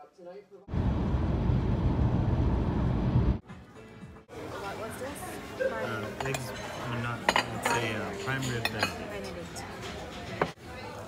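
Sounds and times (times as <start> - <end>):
cutlery clinking on plates: 5.8 - 10.6.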